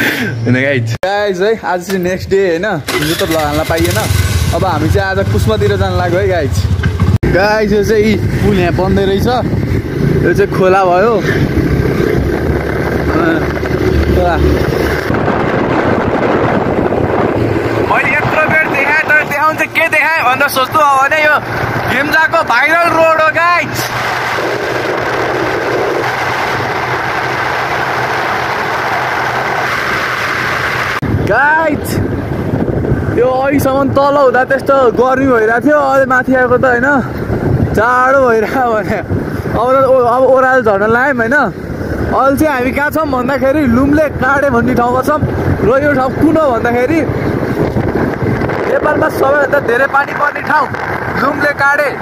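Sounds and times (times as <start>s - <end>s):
road noise: 0.0s - 52.0s
vehicle engine hum: 2.8s - 31.4s
person talking: 17.8s - 24.0s.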